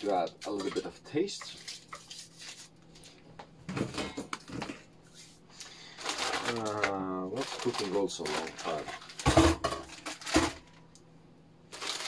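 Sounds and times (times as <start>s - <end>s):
plastic bags rustling: 0.0s - 10.8s, 11.7s - 12.0s.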